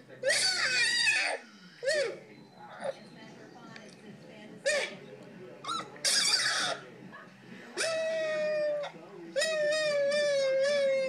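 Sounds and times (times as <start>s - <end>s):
puppy yelping: 0.2s - 2.9s, 5.6s - 6.8s, 7.8s - 11.0s
puppy howling high-pitched: 7.8s - 11.0s.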